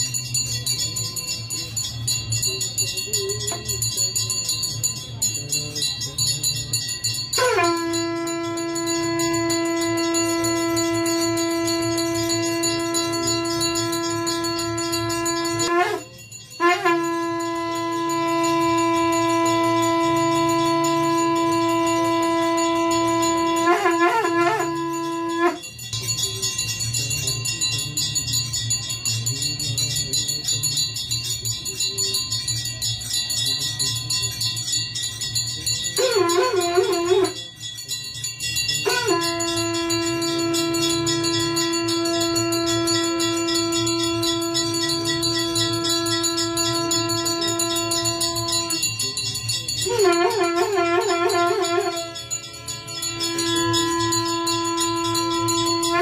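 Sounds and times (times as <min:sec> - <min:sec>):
conch shell blowing: 0:00.0 - 0:56.0
temple bells ringing: 0:00.0 - 0:56.0.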